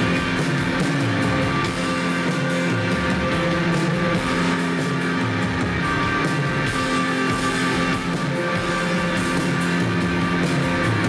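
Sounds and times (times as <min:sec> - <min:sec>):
drums and cymbals: 0:00.0 - 0:11.0
electric guitar: 0:00.0 - 0:11.0.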